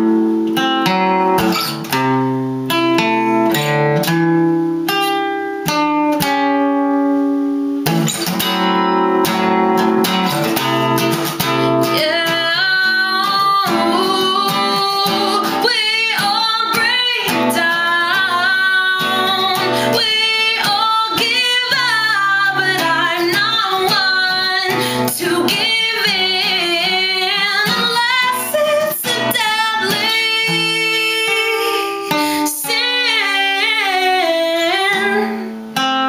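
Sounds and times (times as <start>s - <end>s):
strummed acoustic guitar: 0.0s - 36.0s
woman singing: 10.6s - 35.8s.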